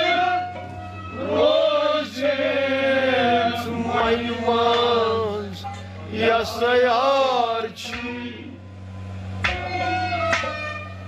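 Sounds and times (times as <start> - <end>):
man singing long wavering notes: 0.0 - 8.6
low accompaniment drone: 0.0 - 11.0.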